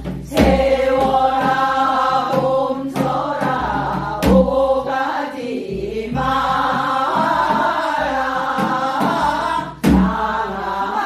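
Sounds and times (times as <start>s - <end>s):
women singing in unison: 0.0s - 11.0s.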